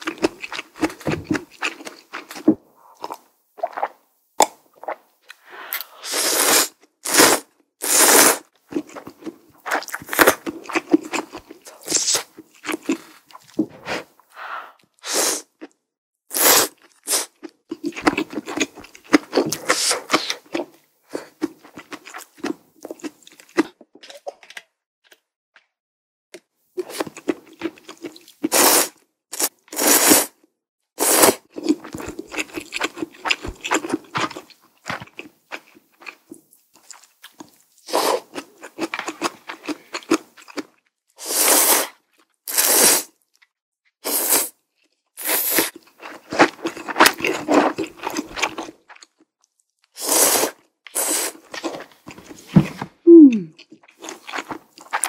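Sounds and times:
wet chewing: 0.0 - 5.9, 31.6 - 40.8, 45.5 - 49.6, 53.4 - 55.0
loud noodle slurps: 5.3 - 8.5, 13.8 - 15.6, 16.3 - 17.4, 28.4 - 30.4, 31.0 - 31.4, 37.8 - 38.4, 41.2 - 43.2, 44.0 - 44.6, 45.2 - 48.6, 50.0 - 51.9.

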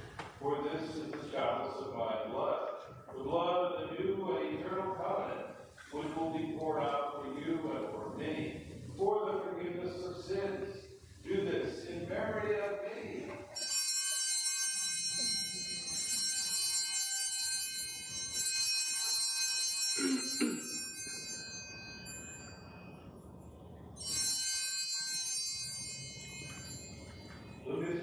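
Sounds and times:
altar bells ringing: 13.5 - 28.0.

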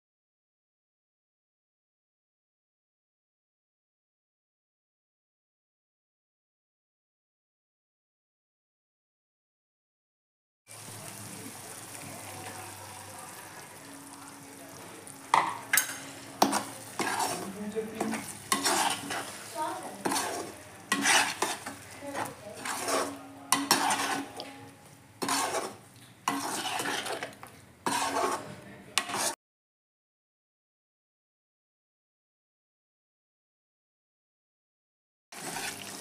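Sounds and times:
tomato sauce sizzling in a pan: 10.7 - 29.4, 35.4 - 36.0
metal spatula scraping and stirring: 11.5 - 29.4, 35.3 - 36.0.

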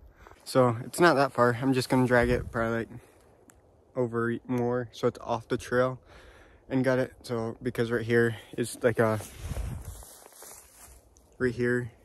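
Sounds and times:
footsteps through dry grass: 0.1 - 3.3, 8.2 - 12.0
low rumble on microphone: 9.2 - 10.1.

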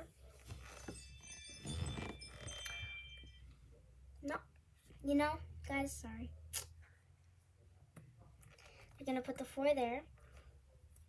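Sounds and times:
chiming doorbell alert tone: 0.7 - 3.7.

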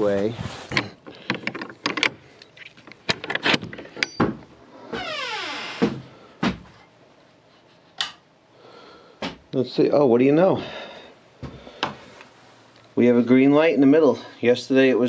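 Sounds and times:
door creaking on hinges: 0.7 - 6.1
metal latch clicking and rattling: 1.2 - 4.4.

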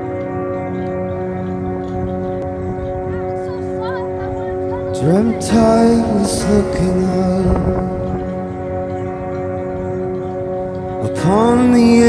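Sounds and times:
held music chord: 0.0 - 12.0.

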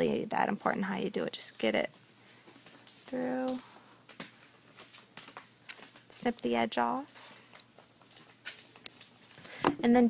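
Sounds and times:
soft clicks and rustles: 1.9 - 9.6.

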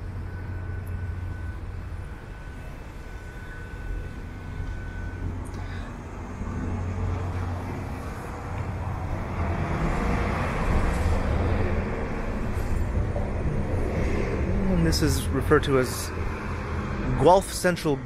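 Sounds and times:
low engine rumble: 0.0 - 18.0
vehicle passing: 2.4 - 18.0.

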